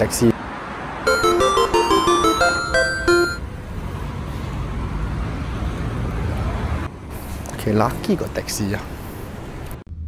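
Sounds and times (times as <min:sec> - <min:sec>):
cars driving past: 0:00.1 - 0:10.0.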